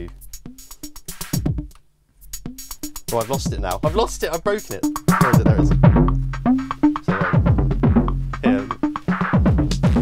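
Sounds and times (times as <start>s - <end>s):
crisp hi-hat ticks: 0.0s - 9.9s
deep kick drums falling in pitch: 4.8s - 10.0s.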